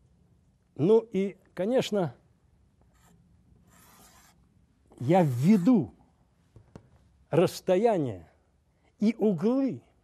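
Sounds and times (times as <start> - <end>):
chalk scraping on chalkboard: 2.9 - 4.4.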